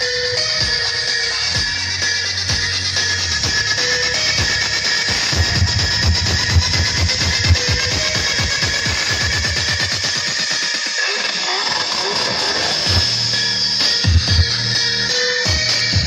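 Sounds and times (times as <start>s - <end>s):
electronic dance music heavy bass: 0.0s - 16.0s.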